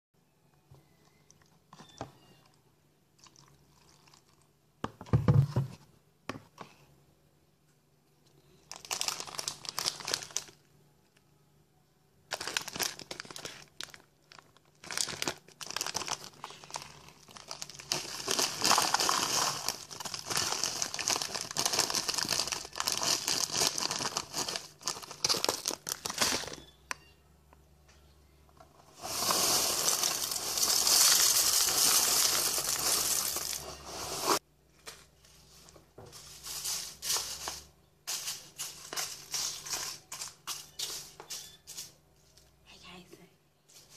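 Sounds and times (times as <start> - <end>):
cereal rattling in plastic container: 12.3 - 26.6, 28.9 - 34.4, 36.2 - 41.4.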